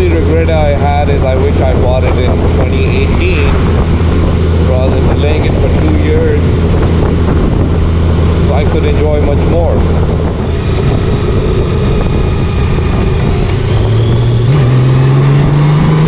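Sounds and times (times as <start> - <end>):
motorcycle engine drone: 0.0 - 16.0
road and wind noise: 0.0 - 16.0.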